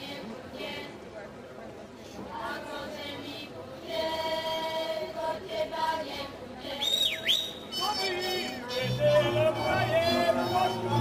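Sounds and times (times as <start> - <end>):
group singing a folk song: 0.0 - 1.1, 2.1 - 11.0.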